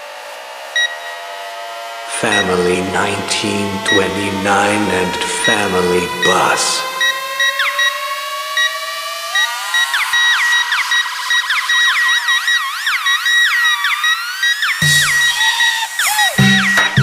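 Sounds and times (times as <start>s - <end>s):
rising synth tone: 0.0s - 17.0s
wavering siren-like synth lines: 0.0s - 17.0s
repeating high beep: 0.8s - 1.2s, 14.5s - 17.0s.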